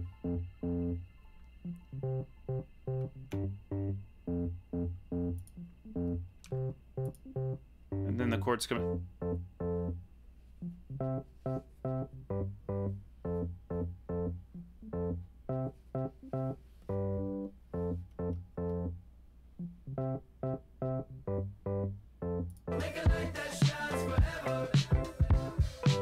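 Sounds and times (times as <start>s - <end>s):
electric keys playing chords: 0.0s - 19.0s, 19.6s - 26.0s.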